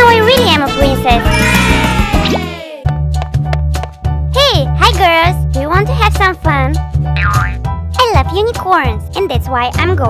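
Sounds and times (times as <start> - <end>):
children's music with bass line: 0.0 - 10.0.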